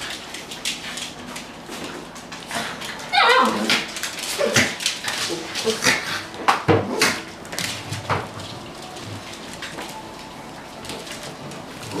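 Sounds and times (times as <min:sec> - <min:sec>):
dog claws clicking on tiled floor: 0:00.0 - 0:12.0.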